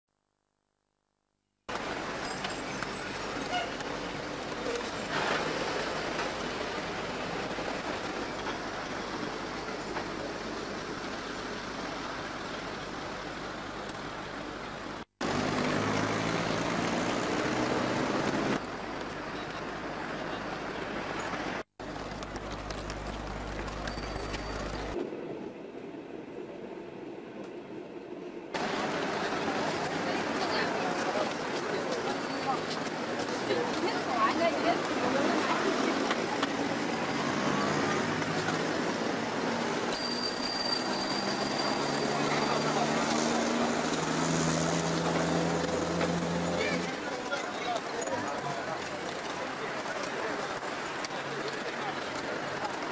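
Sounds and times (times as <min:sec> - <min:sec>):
street noise: 0:01.7 - 0:52.9
vehicle engines: 0:01.7 - 0:52.9
loud engine: 0:15.2 - 0:18.6, 0:40.9 - 0:47.0.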